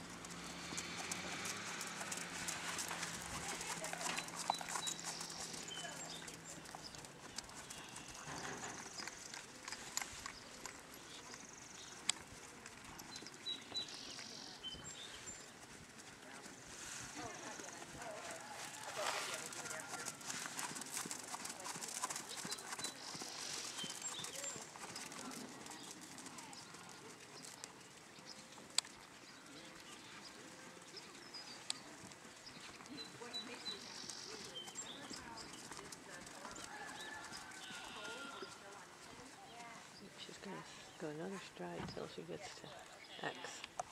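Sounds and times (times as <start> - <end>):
horse hoofbeats on sand: 0.1 - 9.6, 10.8 - 27.4.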